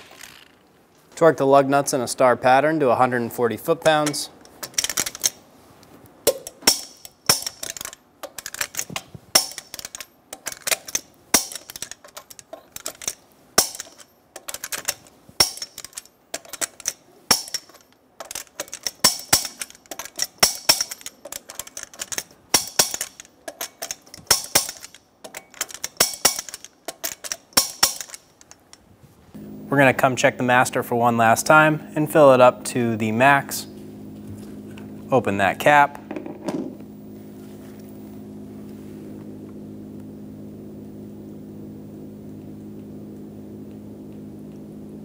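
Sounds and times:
torque wrench ratcheting: 6.3 - 28.8.

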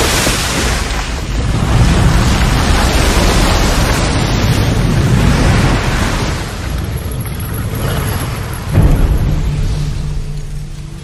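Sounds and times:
deep rumble: 1.2 - 11.0.

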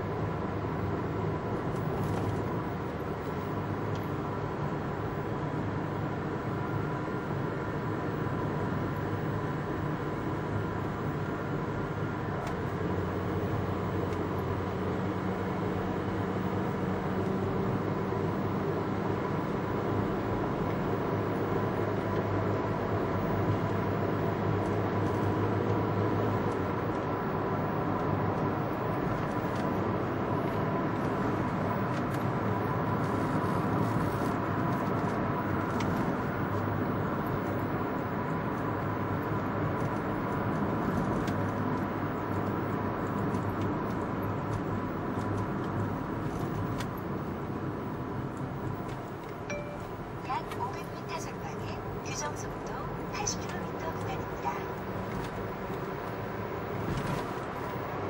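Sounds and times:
car road and engine noise: 0.0 - 58.0
faint steady tone: 49.4 - 54.7.

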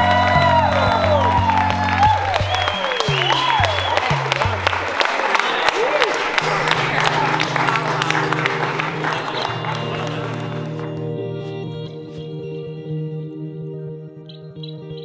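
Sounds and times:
background music with bass line: 0.0 - 5.0, 6.4 - 15.0
whoops: 0.0 - 11.0
crowd applauding and cheering: 0.0 - 11.6.

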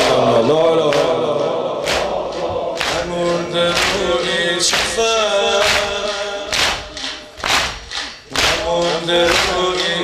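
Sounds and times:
congregation singing together: 0.0 - 10.0
sharp rhythmic slaps: 0.0 - 10.0.

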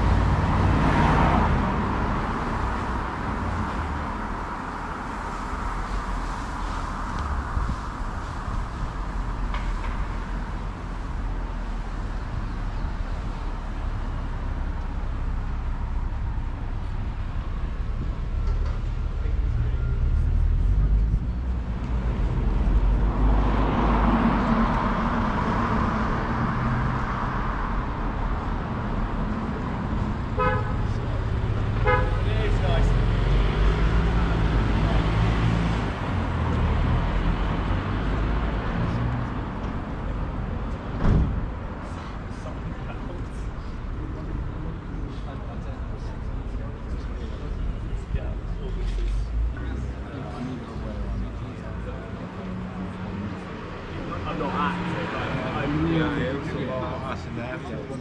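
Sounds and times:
car passing: 0.0 - 12.3, 13.5 - 58.0
vehicle engine rumbling: 0.0 - 58.0
car horn toots: 30.4 - 30.8, 31.8 - 32.3.

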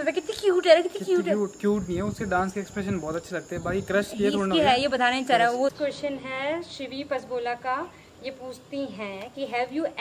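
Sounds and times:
insect chirring: 0.0 - 10.0
people talking: 0.0 - 10.0.

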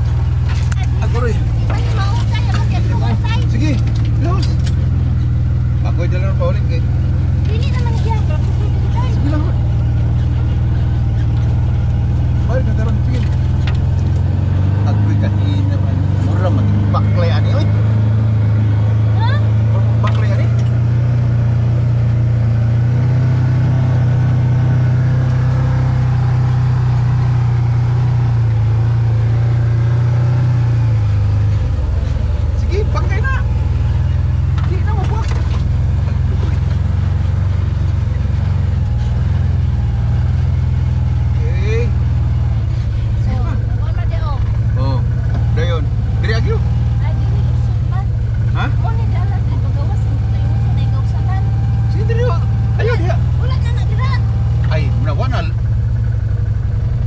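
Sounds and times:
utility vehicle engine droning: 0.0 - 57.0.

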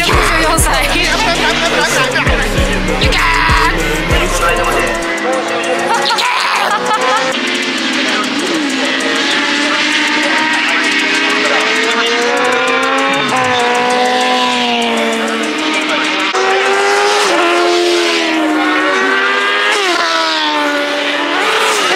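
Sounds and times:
racing motorcycle engine revving: 0.0 - 21.9.

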